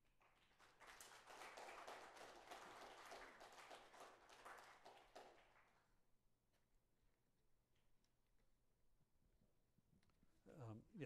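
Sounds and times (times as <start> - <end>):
audience applause: 0.3 - 5.6.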